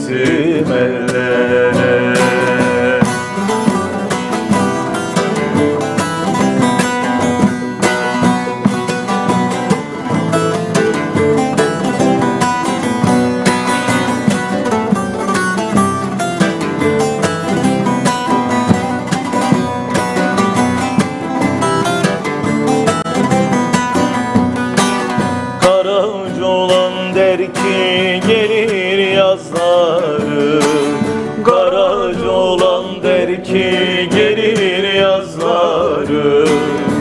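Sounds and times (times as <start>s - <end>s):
man singing: 0.0s - 4.7s, 25.6s - 37.0s
acoustic guitar playing: 0.0s - 37.0s
plucked lute playing: 0.0s - 37.0s.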